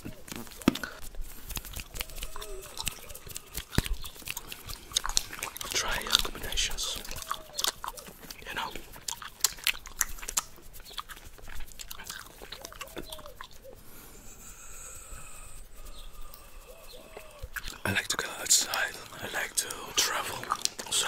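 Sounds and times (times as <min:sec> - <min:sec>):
gum chewing clicks and smacks: 0:00.0 - 0:21.0.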